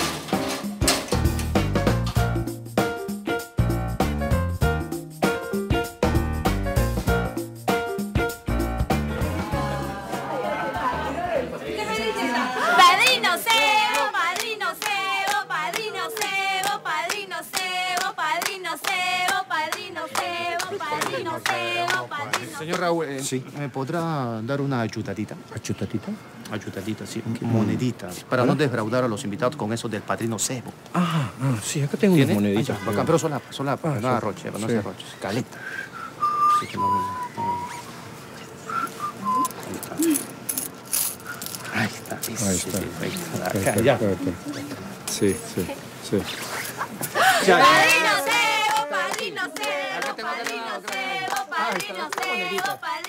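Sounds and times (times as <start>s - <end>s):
voices singing: 9.0s - 23.0s, 46.8s - 53.0s
people clapping in rhythm: 13.0s - 23.0s, 47.3s - 53.0s
person whistling a tune: 35.6s - 37.9s, 38.7s - 40.1s.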